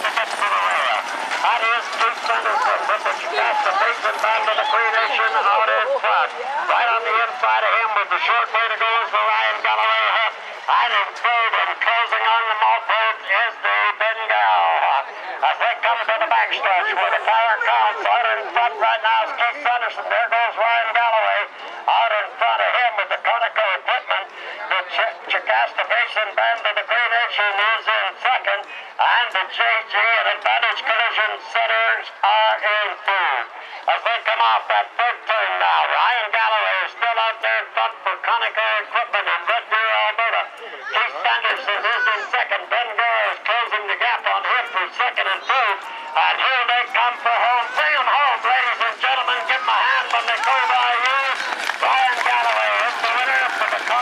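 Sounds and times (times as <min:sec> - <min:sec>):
man announcing over loudspeaker: 0:00.0 - 0:54.0
man calling a race: 0:00.0 - 0:54.0.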